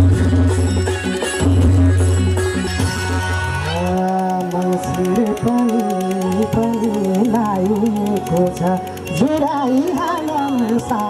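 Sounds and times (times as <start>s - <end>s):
live band playing: 0.0s - 11.0s
man singing a long held note: 3.6s - 11.0s.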